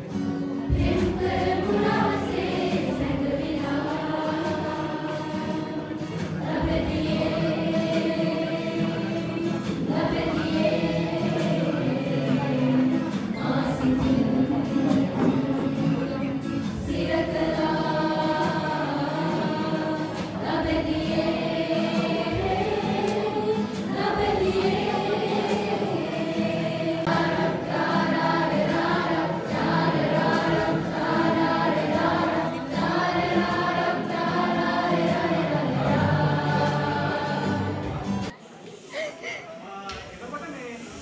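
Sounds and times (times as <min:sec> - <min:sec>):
choir singing: 0:00.0 - 0:38.4.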